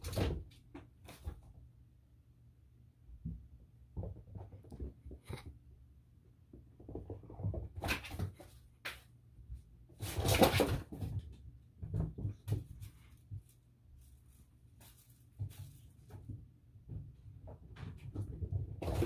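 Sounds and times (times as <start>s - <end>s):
kittens knocking and scuffling: 0.0s - 1.7s, 3.1s - 5.7s, 6.4s - 13.7s, 14.7s - 19.0s.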